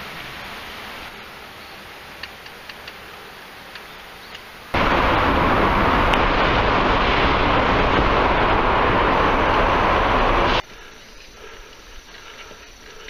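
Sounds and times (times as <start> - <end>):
soft ticks: 2.2 - 3.0
rushing noise of bicycle in tunnel: 4.6 - 13.0.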